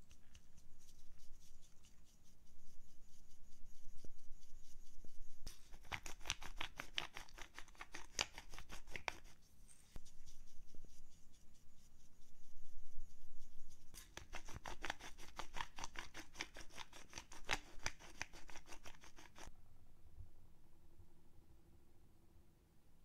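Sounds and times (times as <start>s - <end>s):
pepper grinder crunching: 5.5s - 9.0s.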